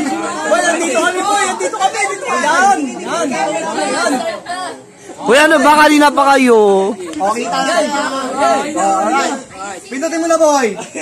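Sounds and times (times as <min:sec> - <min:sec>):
men's voices talking: 0:00.0 - 0:11.0.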